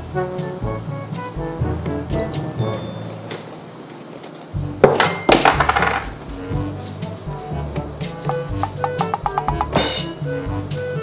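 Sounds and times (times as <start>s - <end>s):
background music: 0.0s - 3.4s, 4.4s - 11.0s
coin dropping with metallic clink: 4.8s - 6.2s.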